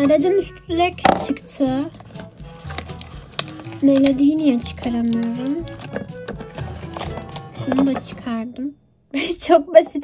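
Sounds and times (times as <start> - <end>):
soft background music: 0.0 - 10.0
cardboard and plastic packaging crinkling: 1.8 - 8.0.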